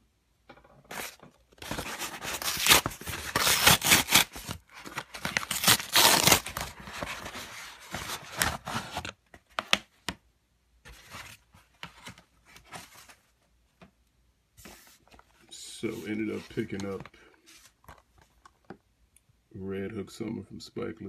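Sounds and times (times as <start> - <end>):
cardboard tearing: 0.9 - 9.1.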